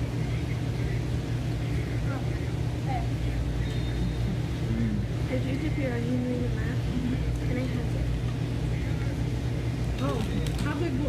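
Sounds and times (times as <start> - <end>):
faint voices: 0.0 - 11.0
ventilation fans humming: 0.0 - 11.0.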